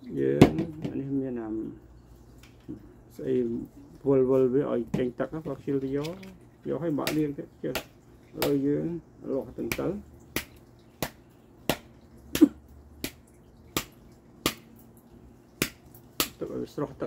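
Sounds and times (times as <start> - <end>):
stems snapping by hand: 5.7 - 6.4, 7.0 - 8.8, 9.5 - 15.0, 15.6 - 16.6.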